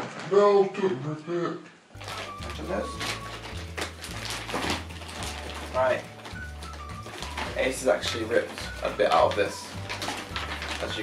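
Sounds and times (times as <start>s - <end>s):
background music with bass line: 2.0s - 11.0s
plastic packaging crinkling: 2.0s - 11.0s.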